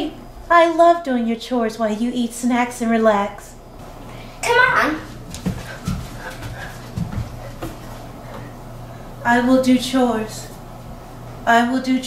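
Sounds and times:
footsteps on hardwood floor: 4.5 - 8.6.

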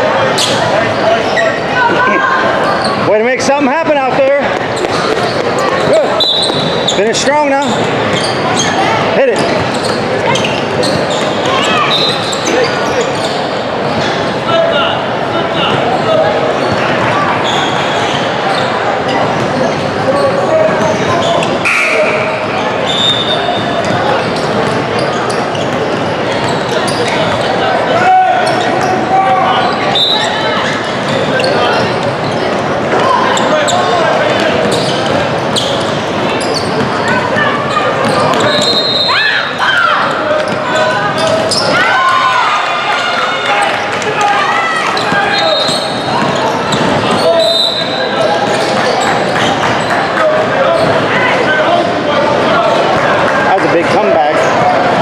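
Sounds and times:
voices echoing in a hall: 0.0 - 55.0.

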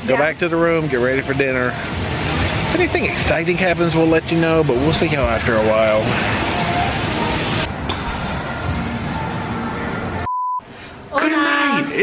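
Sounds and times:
steady rushing noise: 0.0 - 10.3
short single-pitch beep: 10.2 - 10.6.

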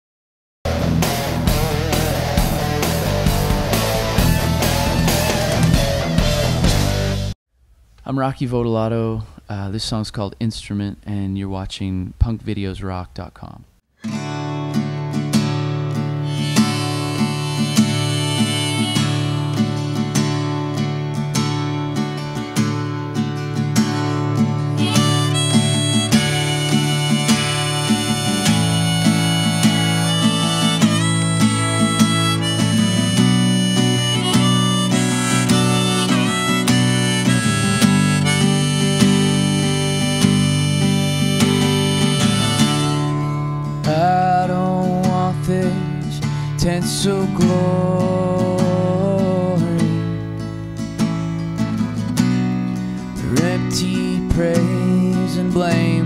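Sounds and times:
acoustic guitar strumming: 0.7 - 7.3, 14.0 - 56.0
harmonica playing: 1.2 - 6.8, 16.0 - 20.7, 24.4 - 44.3.

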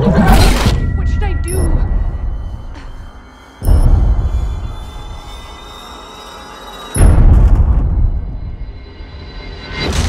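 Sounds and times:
high-pitched whine: 1.2 - 10.0.

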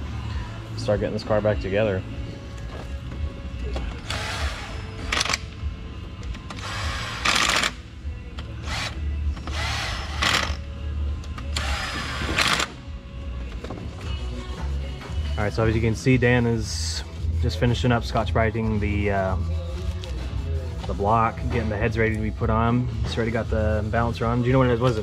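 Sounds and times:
cordless power tool driving bolts: 6.5 - 7.8, 8.6 - 10.6, 11.6 - 12.8.

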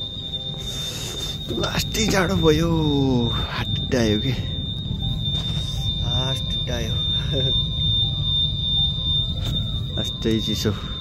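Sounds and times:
factory machinery rumbling: 0.0 - 11.0
high-pitched machine whine: 0.0 - 11.0.

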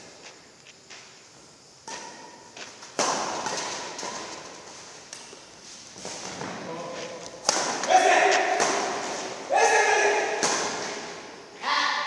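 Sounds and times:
racket hitting shuttlecock: 1.8 - 5.4, 6.0 - 11.3
player shouting: 7.8 - 8.6, 9.5 - 10.4, 11.6 - 12.0.

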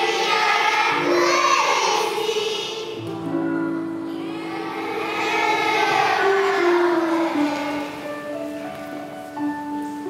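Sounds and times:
children's choir singing: 0.0 - 9.0
instrumental accompaniment: 0.0 - 10.0.

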